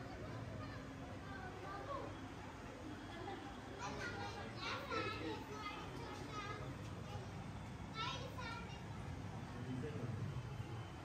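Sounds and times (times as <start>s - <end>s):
children chattering and calling: 0.0s - 10.2s.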